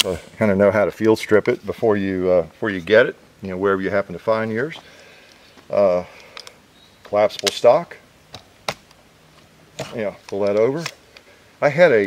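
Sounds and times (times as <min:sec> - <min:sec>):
gun stock clicks: 0:07.3 - 0:07.6.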